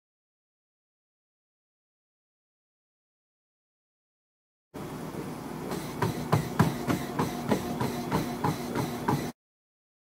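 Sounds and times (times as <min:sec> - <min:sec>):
treadmill motor humming: 0:04.8 - 0:09.4
footfalls on treadmill: 0:05.7 - 0:09.4.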